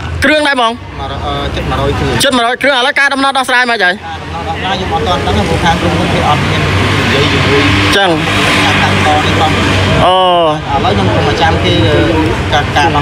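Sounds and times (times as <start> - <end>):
street traffic: 0.0 - 13.0.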